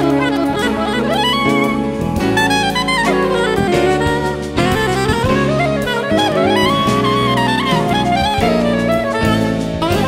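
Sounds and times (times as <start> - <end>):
bass: 0.0 - 10.0
drums: 0.0 - 10.0
saxophone melody: 0.0 - 10.0.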